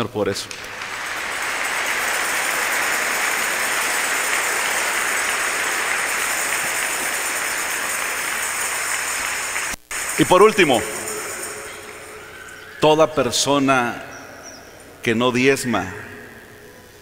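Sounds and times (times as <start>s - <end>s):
congregation applauding: 0.4s - 13.0s.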